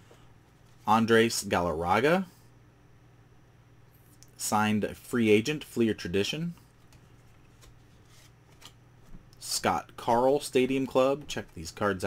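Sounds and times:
rustle of trading cards: 6.6s - 9.2s.

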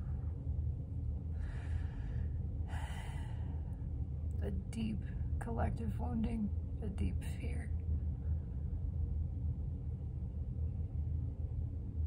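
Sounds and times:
steady low rumble: 0.0s - 12.0s
person breathing in: 1.3s - 3.8s.

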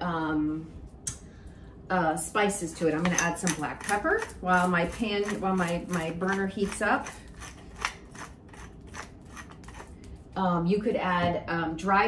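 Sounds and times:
pepper mill grinding: 2.8s - 10.2s.

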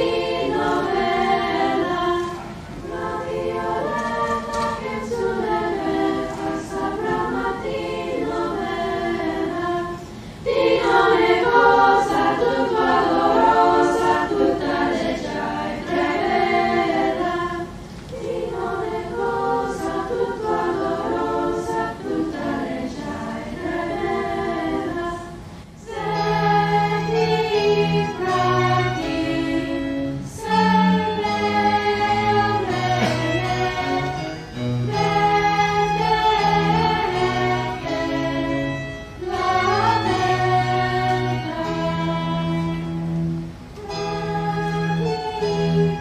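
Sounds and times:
girls' choir singing a cappella: 0.0s - 46.0s.

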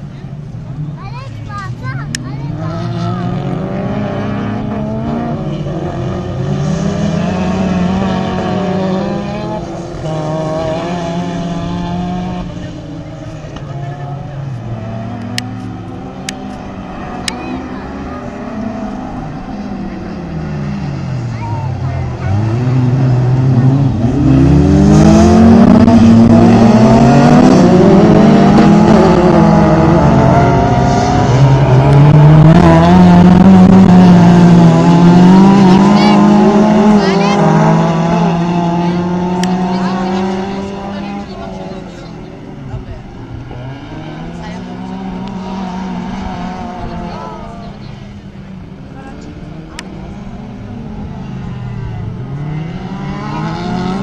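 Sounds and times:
racing car engines revving: 0.0s - 54.0s.

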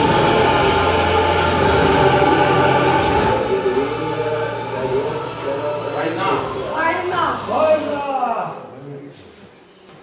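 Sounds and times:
choir singing held chords: 0.0s - 8.0s.

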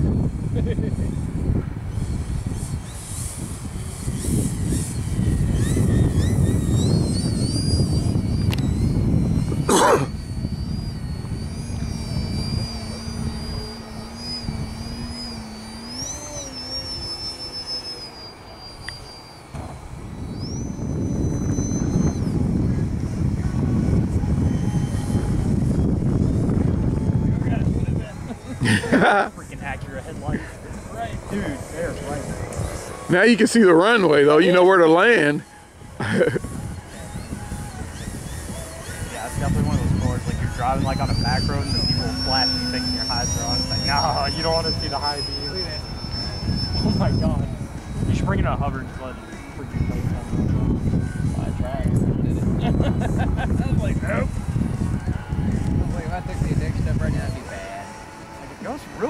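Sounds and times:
model airplane motor whine: 0.0s - 59.0s
wind buffeting microphone: 0.0s - 59.0s.

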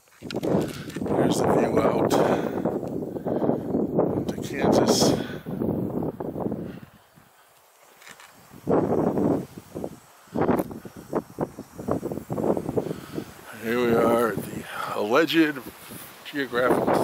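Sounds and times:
wind gusting over microphone: 0.0s - 7.3s, 8.4s - 17.0s.

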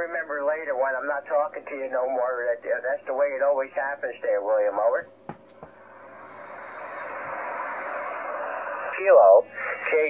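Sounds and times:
radio band noise hiss: 0.0s - 10.0s.

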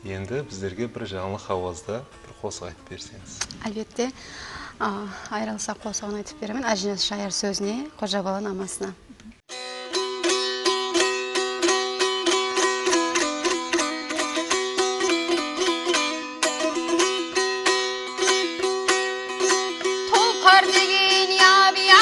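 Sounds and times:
woman singing: 4.8s - 8.6s, 19.8s - 22.0s
lute strummed with drone: 9.5s - 22.0s.

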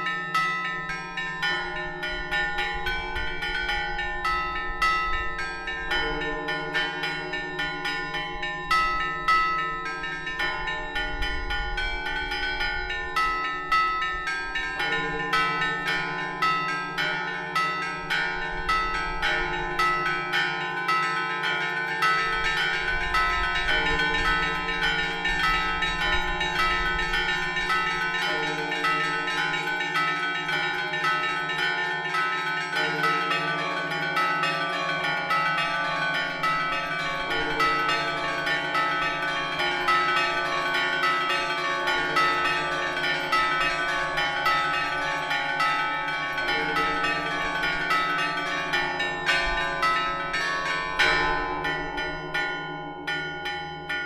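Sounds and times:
deep bells humming: 0.0s - 54.0s
small bells clanging rapidly: 0.0s - 54.0s.

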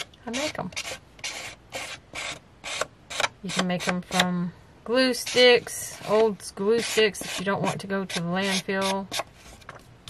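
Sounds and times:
glue stick rubbing paper edge: 0.3s - 4.2s, 5.2s - 9.3s.

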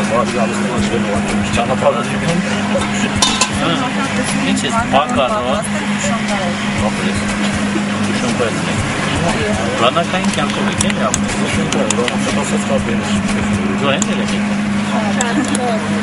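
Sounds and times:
background music: 0.0s - 16.0s
people talking: 0.0s - 16.0s
steady low hum: 0.0s - 16.0s.

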